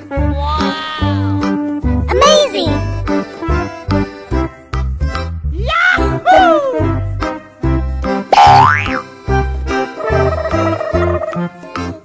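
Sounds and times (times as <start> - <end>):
bouncy children's music: 0.0 - 12.0.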